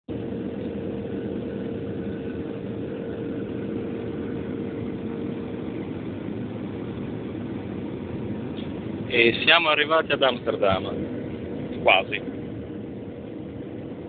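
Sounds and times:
airplane cabin roar: 0.1s - 14.0s
faint steady hum: 0.1s - 14.0s.

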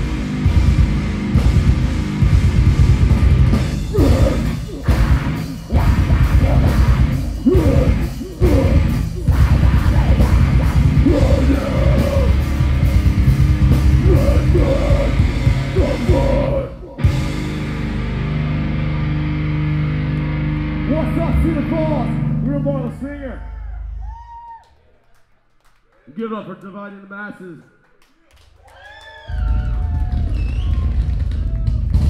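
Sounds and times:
heavy rock band playing: 0.0s - 22.9s
shouted vocals: 3.9s - 12.7s, 13.7s - 17.1s, 23.0s - 24.8s.

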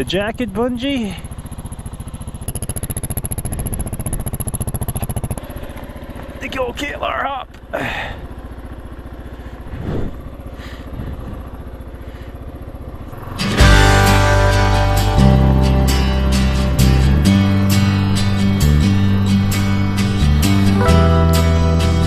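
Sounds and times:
motorcycle engine running: 0.0s - 22.0s
strummed acoustic guitar music: 13.2s - 22.0s.

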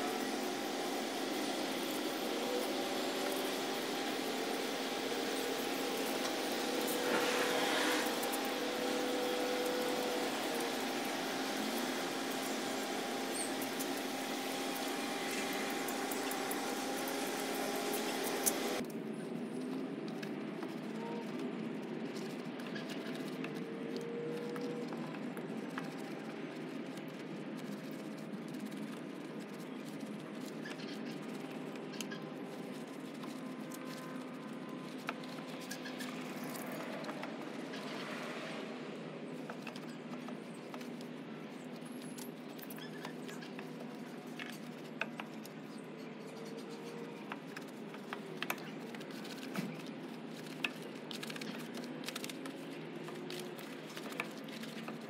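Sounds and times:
motor hum: 0.0s - 18.8s
water spraying hiss: 0.0s - 18.8s
wheel brush scrubbing clicks: 14.8s - 18.8s.

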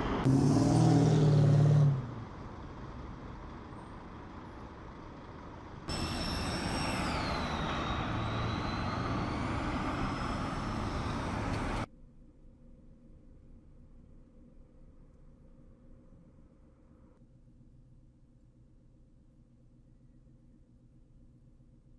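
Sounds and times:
street traffic: 0.0s - 11.9s
tram passing with electric whine: 0.0s - 11.9s.

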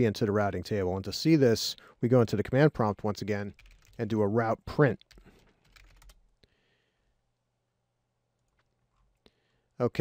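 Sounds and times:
faint computer keyboard typing: 3.5s - 4.0s, 5.0s - 6.3s, 8.4s - 9.3s.

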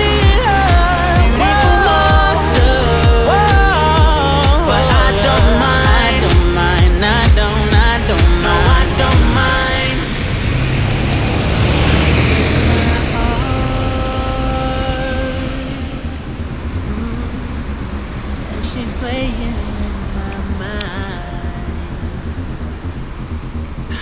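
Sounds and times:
pop song with singing: 0.0s - 22.8s
bus engine running: 0.0s - 24.0s
steady whine: 0.0s - 24.0s
tyres rushing on wet road: 0.0s - 24.0s.

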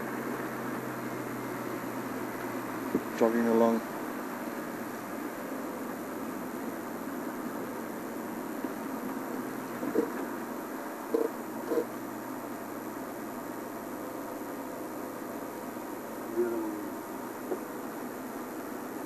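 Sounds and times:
constant hiss: 0.0s - 19.0s
vehicle engine running: 0.0s - 19.0s.

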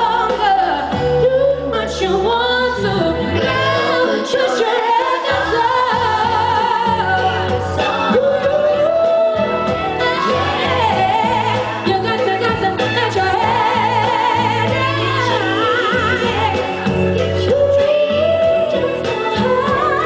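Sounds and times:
amplified backing music: 0.0s - 20.0s
woman singing pop ballad: 0.0s - 20.0s.

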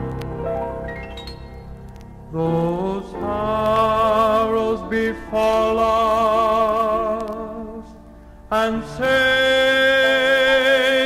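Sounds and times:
instrumental backing: 0.0s - 10.5s
male vocal group singing gospel: 8.5s - 11.0s.

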